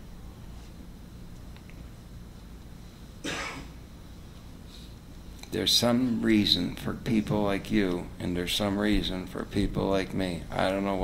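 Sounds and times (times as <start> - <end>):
person coughing: 3.2 - 3.8.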